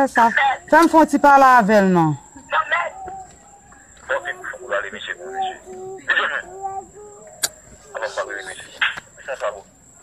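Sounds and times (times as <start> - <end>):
faint high whine: 0.0 - 10.0
person speaking and humming: 4.2 - 8.6.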